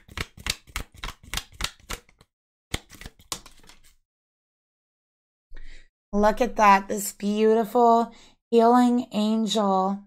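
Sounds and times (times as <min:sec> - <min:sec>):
cards rustling: 0:00.0 - 0:04.0
cards shuffling clicks: 0:00.0 - 0:04.0.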